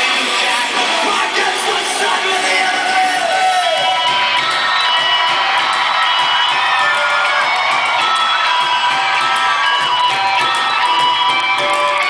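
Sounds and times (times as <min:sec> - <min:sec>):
crowd cheering and shouting: 0:00.0 - 0:12.0
live rock band playing: 0:00.0 - 0:12.0.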